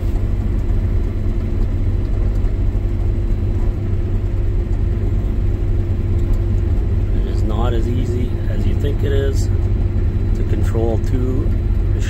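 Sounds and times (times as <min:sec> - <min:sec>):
low engine drone: 0:00.0 - 0:12.0
machinery hum: 0:00.0 - 0:12.0.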